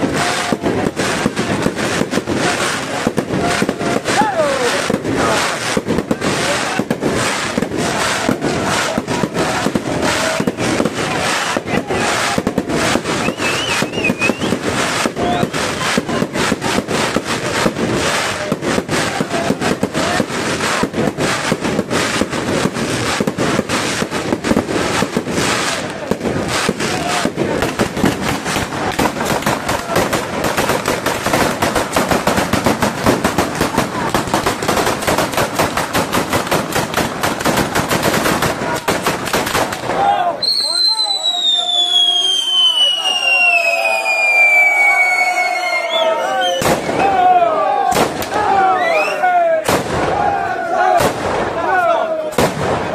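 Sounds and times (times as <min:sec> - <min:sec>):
firecrackers banging rapidly: 0:00.0 - 0:52.9.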